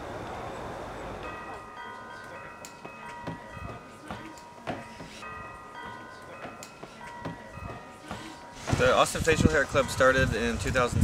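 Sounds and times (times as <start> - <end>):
metal chimes ringing: 1.0 - 10.6.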